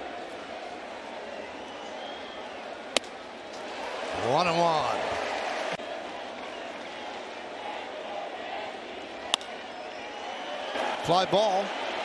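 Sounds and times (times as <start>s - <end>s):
stadium crowd murmur: 0.0s - 12.0s
baseball hitting glove crack: 2.9s - 3.2s, 9.3s - 9.6s.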